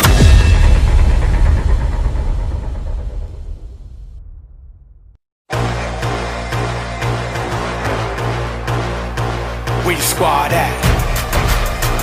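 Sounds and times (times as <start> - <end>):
deep cinematic boom rumble: 0.0 - 5.2.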